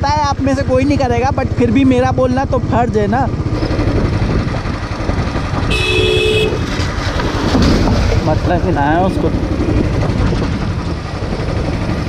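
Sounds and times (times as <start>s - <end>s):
motorcycle engine running: 0.0s - 12.0s
horn honking: 5.6s - 6.8s.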